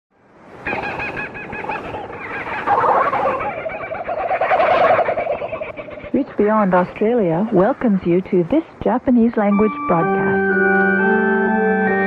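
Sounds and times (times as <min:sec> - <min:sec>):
bird calls over radio: 0:00.6 - 0:07.6.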